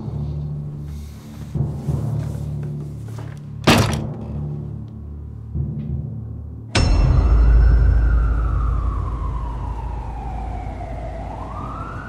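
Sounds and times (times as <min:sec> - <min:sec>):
siren wailing: 0:07.7 - 0:12.0
city traffic rumble: 0:08.2 - 0:12.0.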